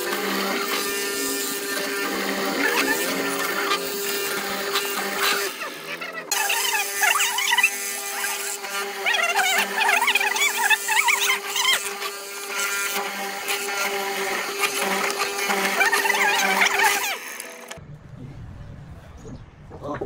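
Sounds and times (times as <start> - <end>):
mortiser motor hum: 0.0 - 18.3.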